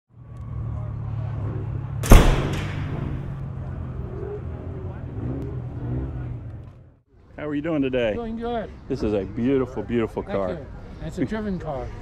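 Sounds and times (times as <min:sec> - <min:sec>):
loud sharp bang: 0:02.0 - 0:03.4.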